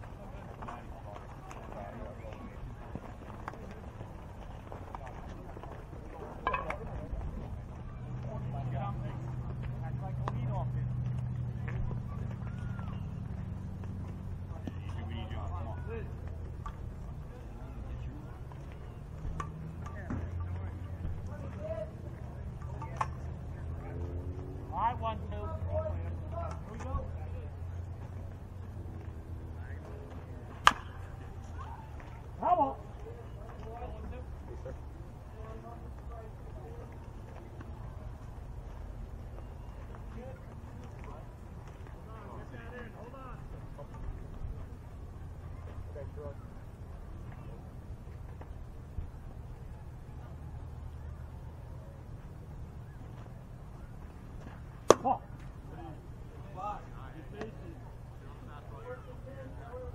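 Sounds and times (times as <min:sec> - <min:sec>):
distant voices calling and chatting: 0:00.0 - 0:59.9
low rumble of outdoor air: 0:00.0 - 0:59.9
bat cracking on ball: 0:06.4 - 0:06.9, 0:30.5 - 0:31.0, 0:54.8 - 0:55.2.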